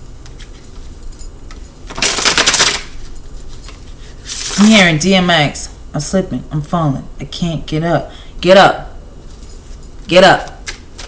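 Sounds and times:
cards being shuffled: 1.5 - 4.7.

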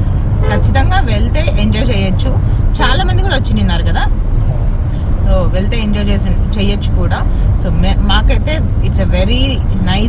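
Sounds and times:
car rumble from inside: 0.0 - 10.0
woman talking: 0.5 - 4.1, 5.2 - 10.0.

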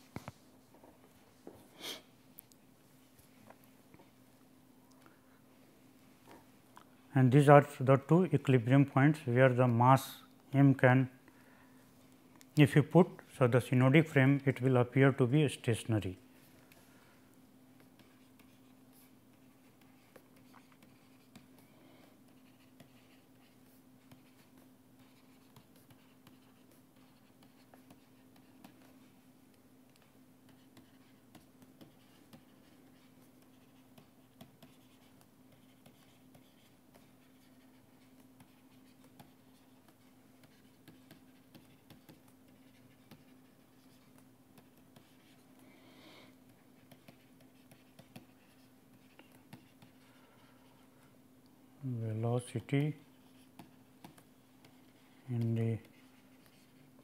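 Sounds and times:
steady low hum: 0.0 - 57.0
stylus tapping and scratching: 17.7 - 45.7, 46.3 - 50.9, 52.4 - 57.0.

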